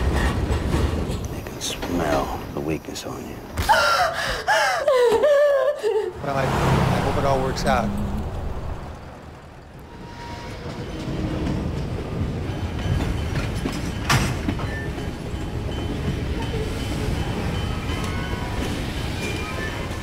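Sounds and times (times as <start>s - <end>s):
train rumbling and rattling: 0.0s - 4.6s, 6.2s - 20.0s.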